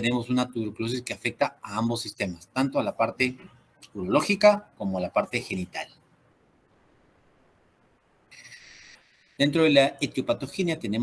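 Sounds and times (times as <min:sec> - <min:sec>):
high-pitched hiss: 0:08.2 - 0:10.8.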